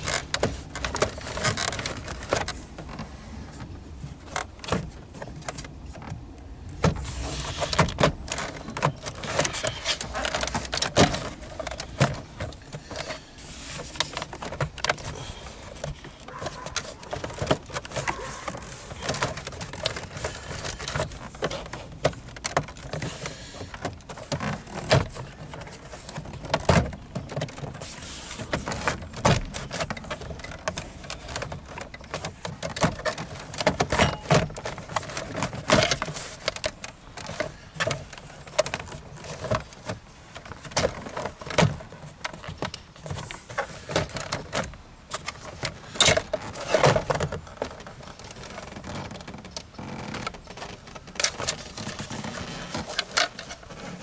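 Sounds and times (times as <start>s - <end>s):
plastic trim panels clicking and creaking: 0.0s - 54.0s.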